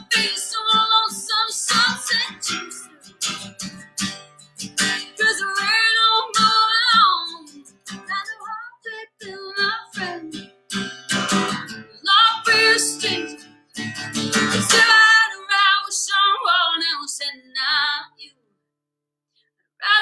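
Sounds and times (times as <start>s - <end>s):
woman singing: 0.0s - 3.3s, 4.8s - 10.6s, 11.4s - 13.6s, 14.4s - 18.4s, 19.8s - 20.0s
strummed acoustic guitar: 0.0s - 18.0s.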